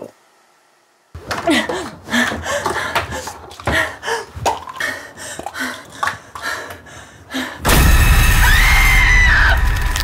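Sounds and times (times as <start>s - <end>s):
high rising scream: 7.7s - 10.0s.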